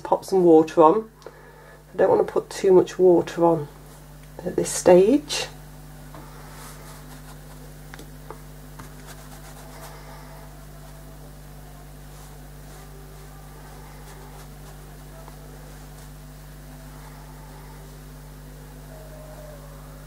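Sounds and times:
low hum: 0:00.0 - 0:20.0
wet brush strokes on paper: 0:06.3 - 0:07.8, 0:08.7 - 0:11.1, 0:12.0 - 0:16.3.

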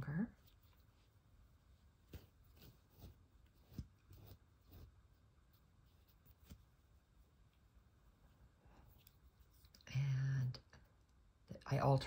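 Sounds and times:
faint fabric rustles: 0:00.0 - 0:12.0.

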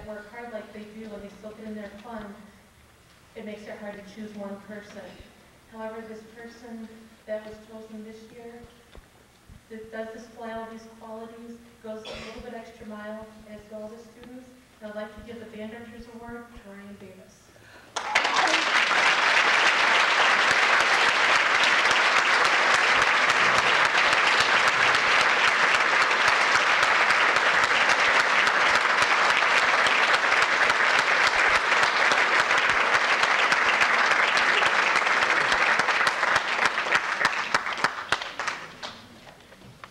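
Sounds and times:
audience applauding: 0:17.9 - 0:39.2.

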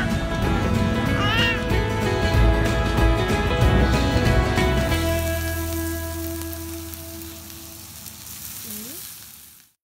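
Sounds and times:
meat sizzling on a grill plate: 0:04.8 - 0:09.8.

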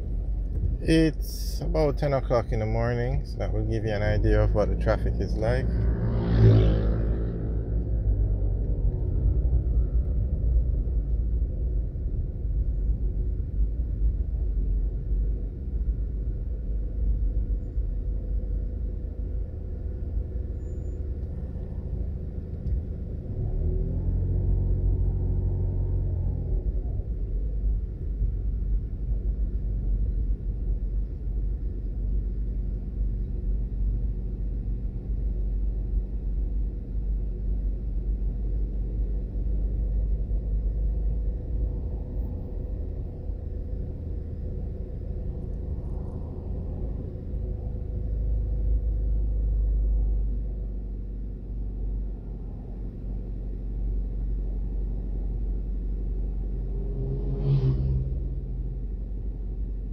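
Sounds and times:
car engine and road noise: 0:00.0 - 0:59.9
engine note rising: 0:03.2 - 0:10.0, 0:56.2 - 0:59.0.

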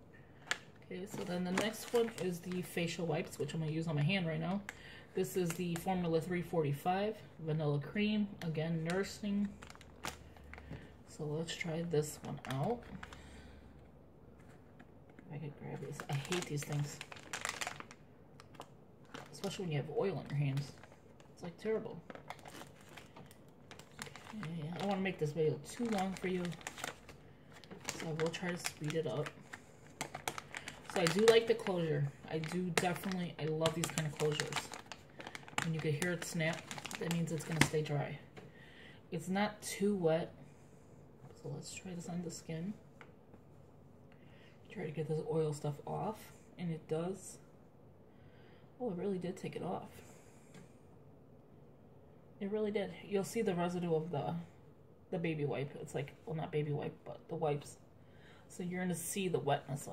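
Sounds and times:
plastic pack crinkling: 0:00.4 - 0:06.0, 0:08.4 - 0:13.6, 0:14.4 - 0:38.1.

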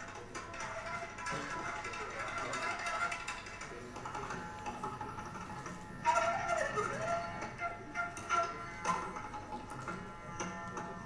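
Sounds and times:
bamboo flute melody: 0:06.0 - 0:10.8.

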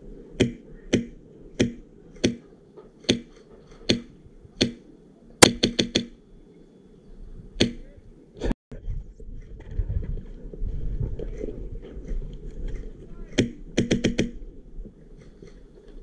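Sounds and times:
airsoft rifle shots: 0:05.4 - 0:06.2, 0:13.3 - 0:14.4.

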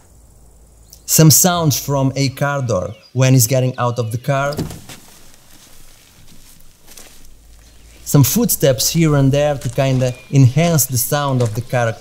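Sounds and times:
quiet outdoor ambience: 0:00.0 - 0:12.0
faint footsteps: 0:04.6 - 0:12.0.

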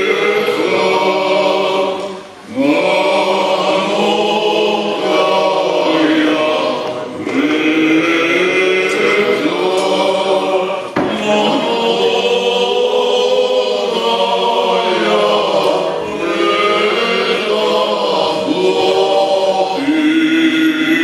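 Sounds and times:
choir chanting with held notes: 0:00.0 - 0:21.0.

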